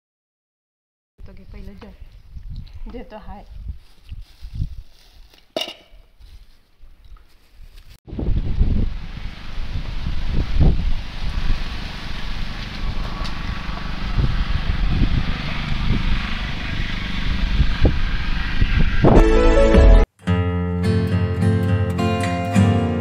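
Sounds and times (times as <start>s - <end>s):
wind buffeting microphone: 1.2s - 5.3s, 8.1s - 19.2s
music with pitched notes: 19.1s - 23.0s.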